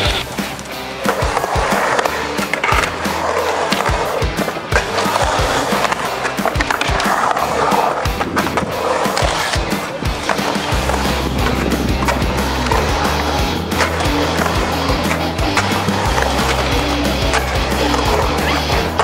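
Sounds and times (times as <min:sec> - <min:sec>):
background music: 0:00.0 - 0:19.0
skateboard clicks: 0:00.0 - 0:19.0
skateboard wheels rolling on concrete: 0:00.0 - 0:19.0.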